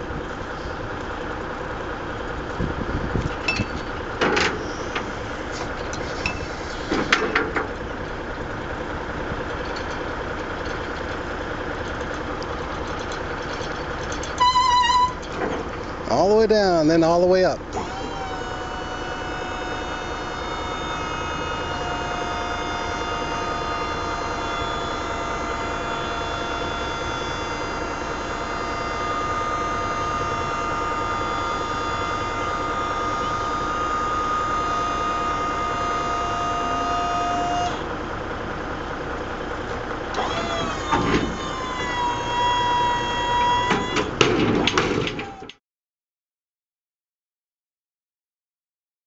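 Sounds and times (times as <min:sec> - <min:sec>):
hydraulic pump whining: 0:00.0 - 0:45.6
lift gate clunks: 0:03.3 - 0:07.8, 0:40.1 - 0:45.6.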